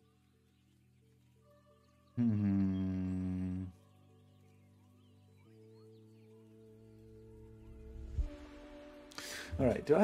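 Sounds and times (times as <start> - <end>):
quiet background music: 0.0 - 10.0
man humming low: 2.2 - 3.8.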